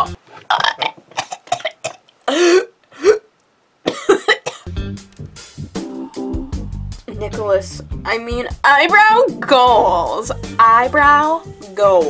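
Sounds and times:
woman coughing: 1.2s - 3.2s, 3.9s - 4.7s.

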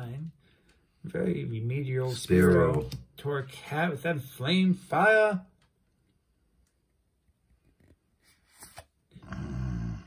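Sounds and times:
person humming or groaning: 9.2s - 10.0s.

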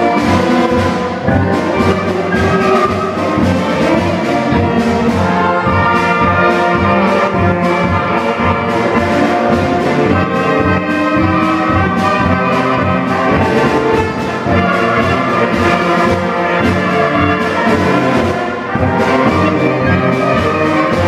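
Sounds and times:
concert band playing a march: 0.0s - 21.0s.

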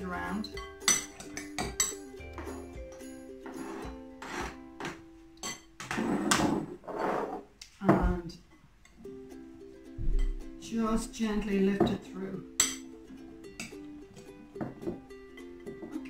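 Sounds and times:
light background music: 0.0s - 5.8s, 8.9s - 16.0s.

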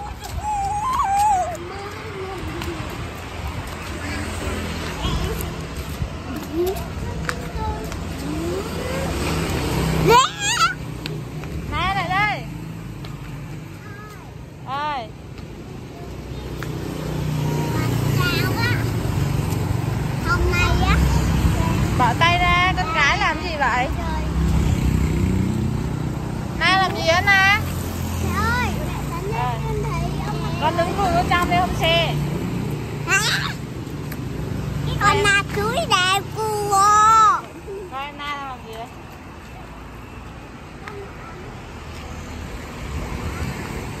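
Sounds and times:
girl squealing: 0.0s - 1.9s, 10.0s - 10.8s.

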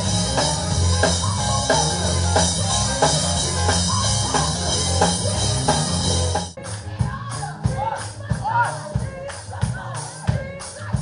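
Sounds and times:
gospel band music: 0.0s - 11.0s.

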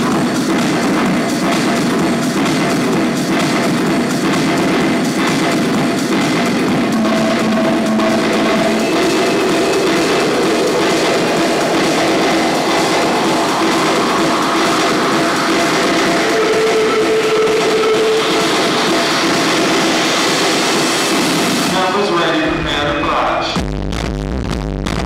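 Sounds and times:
loud electronic dance music: 0.0s - 25.0s.

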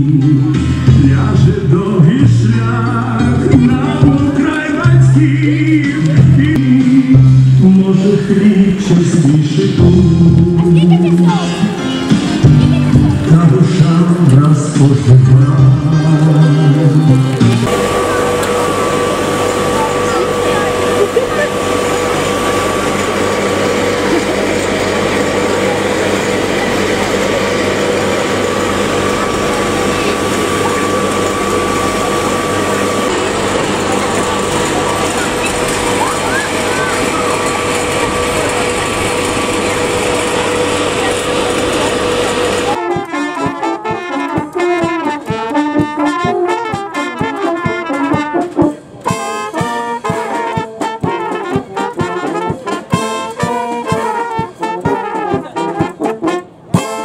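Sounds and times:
brass band playing: 0.0s - 57.0s
motor whirring: 17.3s - 42.8s.

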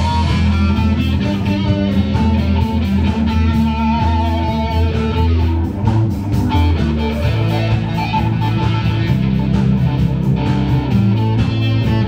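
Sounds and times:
drum kit with cymbals: 0.0s - 12.0s
electric guitar bending notes: 0.0s - 12.0s
upright bass: 0.0s - 12.0s.

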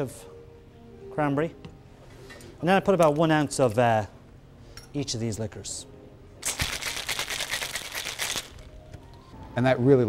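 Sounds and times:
ice rattling in cocktail shaker: 6.4s - 8.7s.

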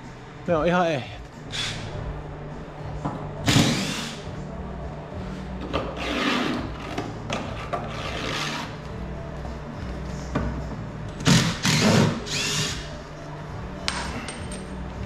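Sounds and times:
power drill running: 11.3s - 12.8s.

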